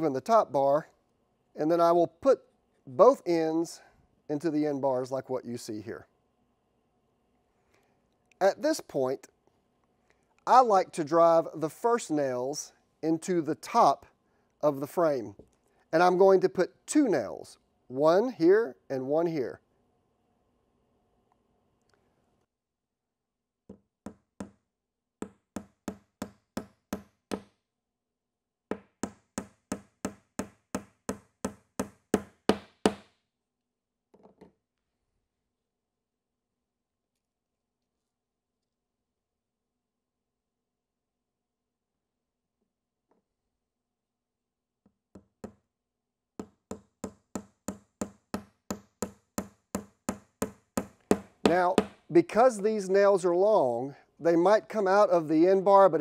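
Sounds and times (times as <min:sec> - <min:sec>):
hammer driving nail into wood: 0:23.7 - 0:24.6, 0:25.2 - 0:27.6, 0:28.7 - 0:33.2, 0:46.4 - 0:52.1.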